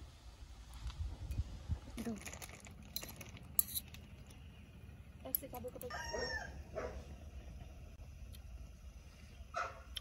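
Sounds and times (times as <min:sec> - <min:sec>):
dog barking: 0:06.1 - 0:07.1, 0:09.5 - 0:10.0.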